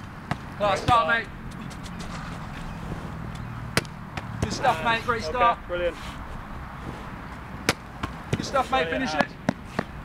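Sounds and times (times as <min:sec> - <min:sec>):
ball slapping into gloves: 0:03.7 - 0:04.5.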